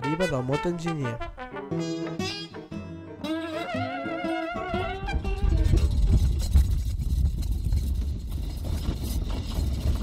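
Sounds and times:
brass music: 0.0 - 5.8.

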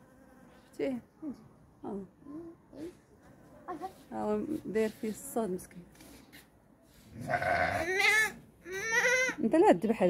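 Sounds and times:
sheep bleating: 7.2 - 9.4.

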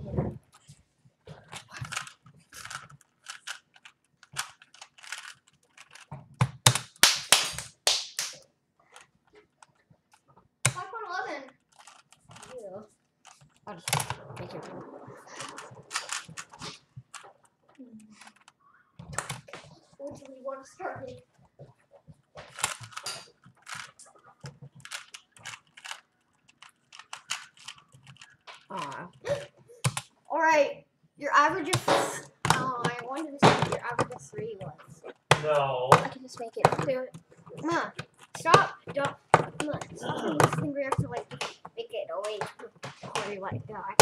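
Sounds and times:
puzzle cube clicking: 1.5 - 8.4, 9.0 - 12.6, 13.2 - 19.6, 22.4 - 30.1, 31.6 - 44.0.

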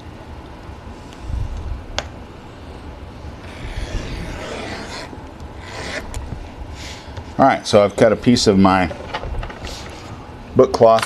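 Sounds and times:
knife cutting cloth along ruler: 3.5 - 6.1.

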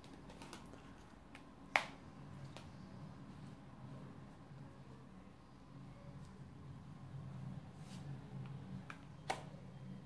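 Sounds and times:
cards being handled: 0.0 - 2.8.

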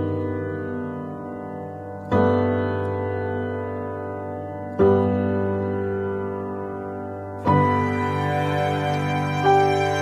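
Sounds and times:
slow sustained piano chords: 0.0 - 10.0.

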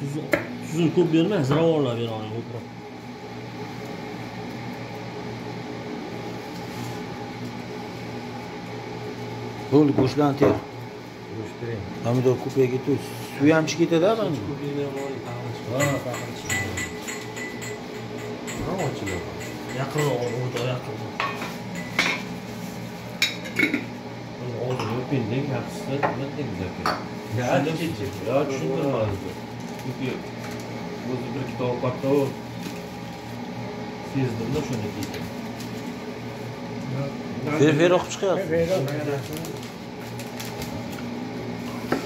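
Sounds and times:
low mechanical hum: 0.0 - 42.0
clinks against metal pot: 14.9 - 22.3.

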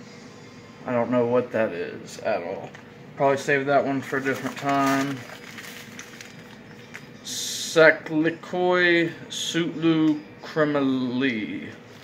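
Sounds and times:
person speaking: 1.0 - 5.9
plastic snack package crinkling: 4.0 - 7.1.

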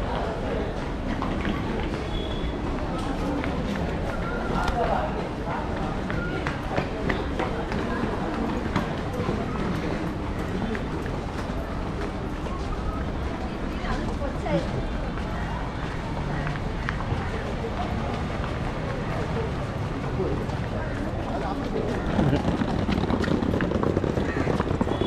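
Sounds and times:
people talking: 0.0 - 23.2.

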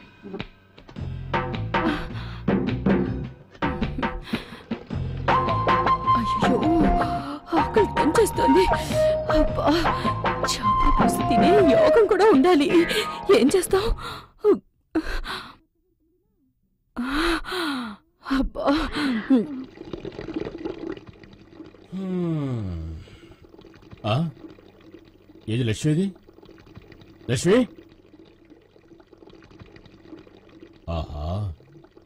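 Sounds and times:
woman sighing: 21.9 - 23.1.

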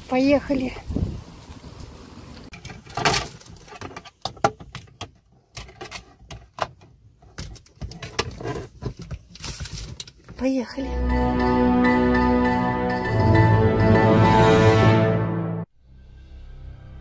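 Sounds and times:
clicks and knocks of compartment: 2.6 - 10.4.

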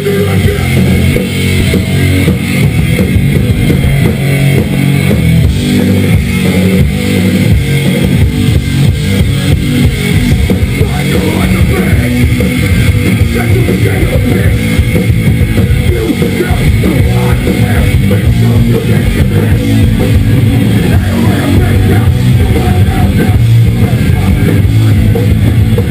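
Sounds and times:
live rock band playing: 0.0 - 25.9.

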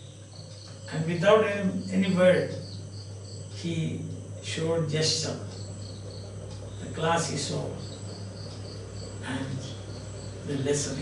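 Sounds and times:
insect chirping: 0.0 - 11.0
low electrical hum: 0.0 - 11.0.

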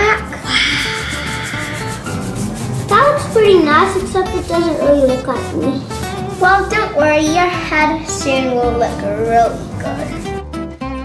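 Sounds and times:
paintbrush scrubbing on paper: 0.0 - 10.4
quiet background music: 0.0 - 11.0.

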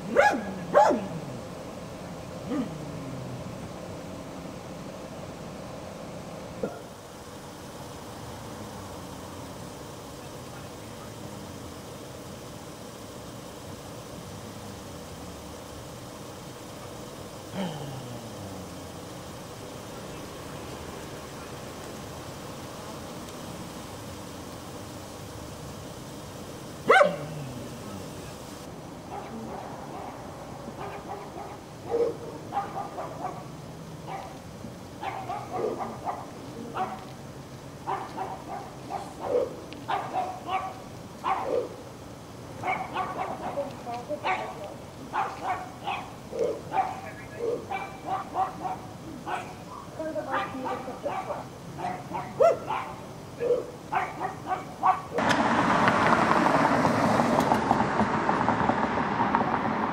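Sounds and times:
dog barking: 0.0 - 1.4, 6.6 - 7.0, 26.8 - 27.7, 29.1 - 34.4, 35.0 - 37.1, 37.8 - 41.8, 42.6 - 55.2
loud steady rushing noise: 55.1 - 59.9.

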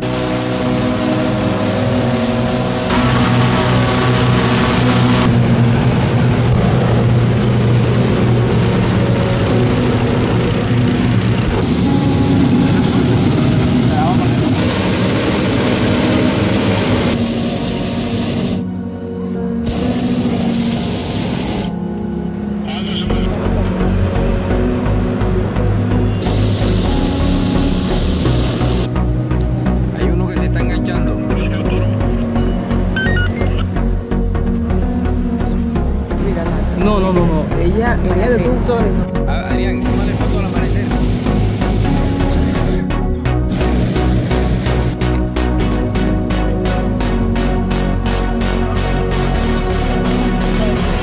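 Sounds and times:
propane burner blasts: 0.0 - 18.7, 19.6 - 21.8, 23.4 - 30.5, 39.5 - 51.0
background music: 0.0 - 51.0.

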